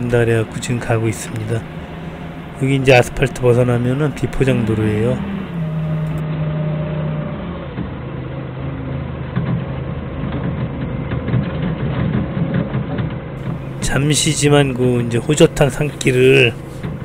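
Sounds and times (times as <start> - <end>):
forklift engine running: 0.0 - 17.0.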